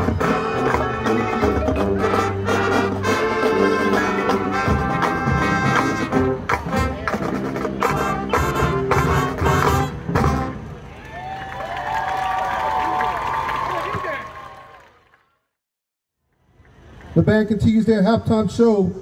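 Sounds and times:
drum strokes: 0:00.0 - 0:10.6
marching band brass: 0:00.0 - 0:11.1.

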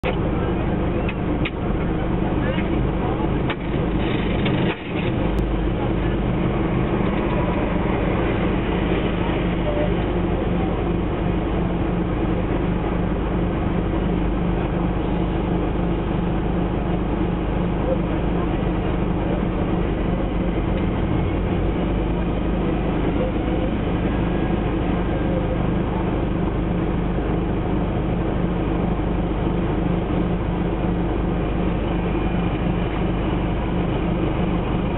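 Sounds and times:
car engine idling: 0:00.0 - 0:34.9.

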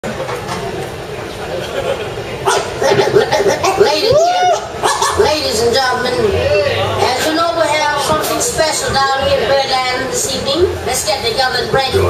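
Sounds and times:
people talking and laughing: 0:00.0 - 0:12.0.

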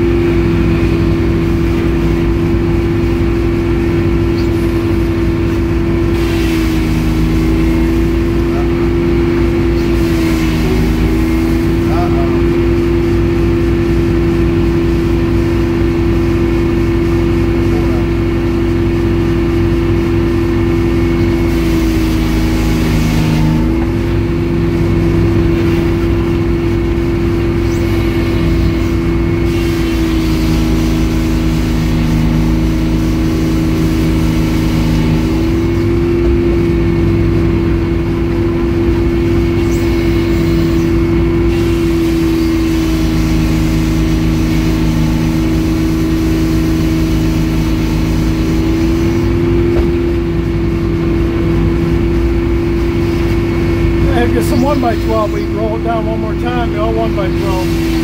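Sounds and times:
sawmill motor humming: 0:00.0 - 0:58.0
circular blade sawing log: 0:04.3 - 0:12.6, 0:21.1 - 0:36.7, 0:39.4 - 0:50.3, 0:52.7 - 0:58.0.

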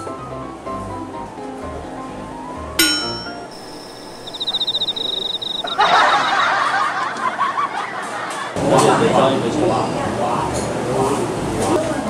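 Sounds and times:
sharp chime ringing: 0:02.8 - 0:06.4
steady high tone: 0:02.8 - 0:06.4
pulsed chirping trill: 0:02.8 - 0:06.5.

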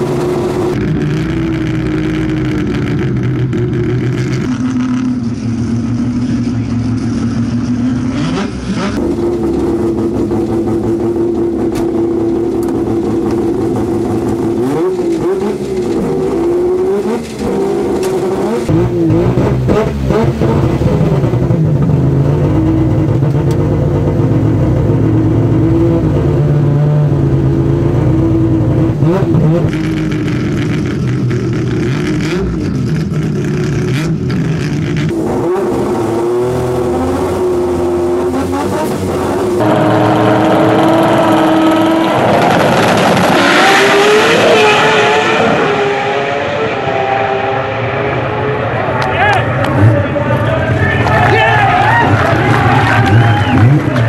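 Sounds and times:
rotary engine idling and revving: 0:00.0 - 0:54.0.

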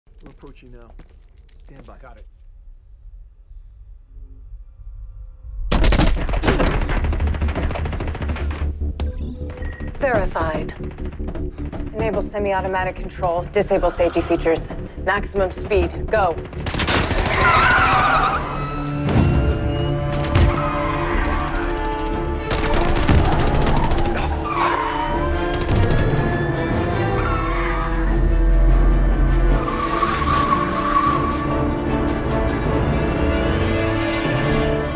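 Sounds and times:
orchestral action score: 0:09.8 - 0:34.9
automatic gunfire: 0:21.3 - 0:24.3.

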